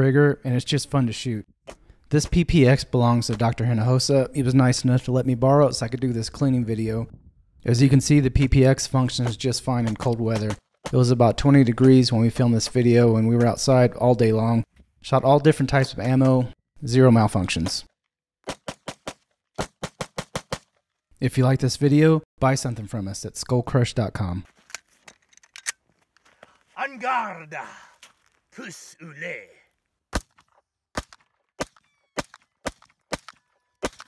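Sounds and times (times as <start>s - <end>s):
pistol shots: 31.0s - 34.0s.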